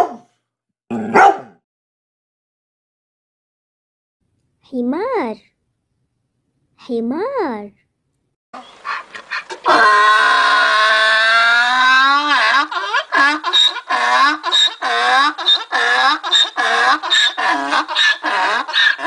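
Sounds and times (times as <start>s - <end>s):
donkey braying: 8.6s - 19.0s.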